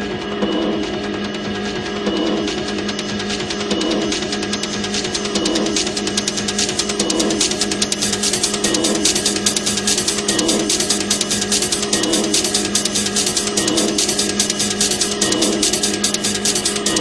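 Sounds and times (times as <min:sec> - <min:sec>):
techno music: 0:00.0 - 0:17.0
rattling high percussion ticks: 0:00.9 - 0:17.0.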